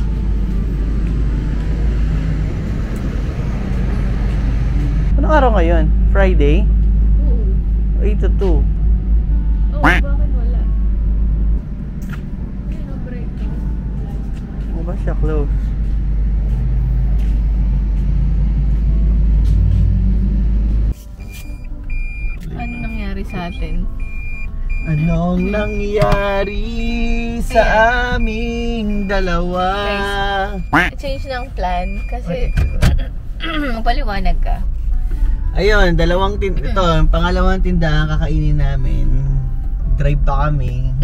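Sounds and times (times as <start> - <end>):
outdoor street noise rumble: 0.0 - 41.0.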